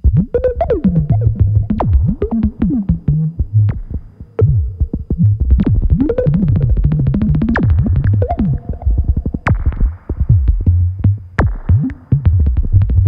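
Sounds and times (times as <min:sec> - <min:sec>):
gliding low synth tones: 0:00.0 - 0:09.7
synthesizer clicky notes: 0:00.0 - 0:13.0.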